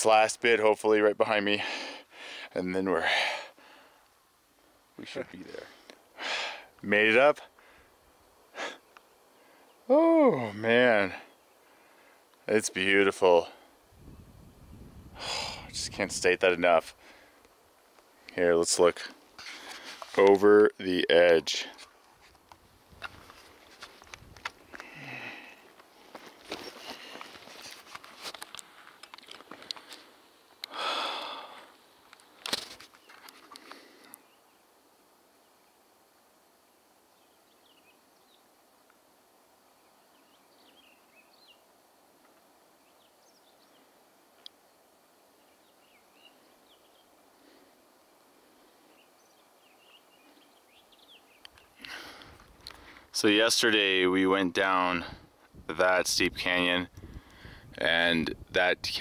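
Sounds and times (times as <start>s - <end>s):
heavy breathing: 1.5s - 4.0s, 5.6s - 6.8s, 7.5s - 9.8s, 15.1s - 15.8s, 24.7s - 27.4s, 29.5s - 31.8s, 51.8s - 53.1s, 57.0s - 57.7s
footsteps on rocky ground: 21.8s - 30.1s
faint bird chirps: 39.7s - 44.4s, 45.3s - 47.3s, 48.5s - 51.9s.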